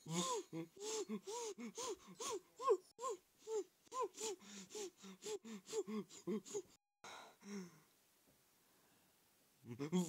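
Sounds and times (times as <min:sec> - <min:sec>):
squawky cartoon voice panting: 0:00.8 - 0:06.8.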